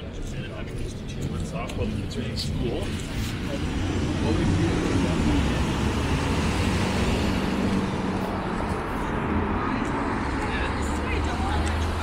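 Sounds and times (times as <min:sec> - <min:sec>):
passing vehicles: 0:00.0 - 0:12.0.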